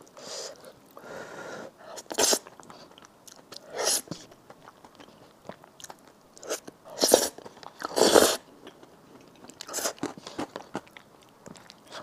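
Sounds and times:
person slurping noodles: 0:06.5 - 0:08.4.

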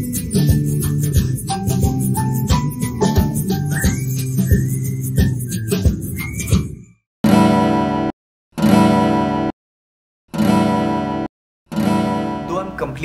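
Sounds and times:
background music: 0:00.0 - 0:06.5, 0:10.4 - 0:13.0
acoustic guitar chord strummed: 0:10.4 - 0:13.0.

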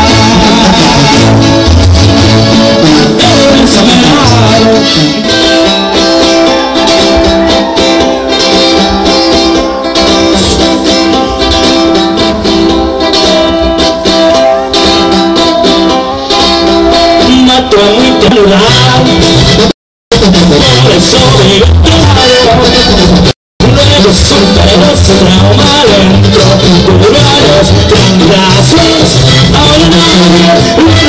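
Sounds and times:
brass band music: 0:00.0 - 0:31.0
percussion: 0:00.0 - 0:31.0.

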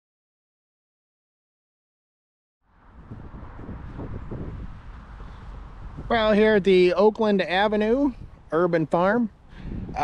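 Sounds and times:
faint outdoor ambience: 0:02.6 - 0:10.0
wind noise on microphone: 0:02.7 - 0:10.0.

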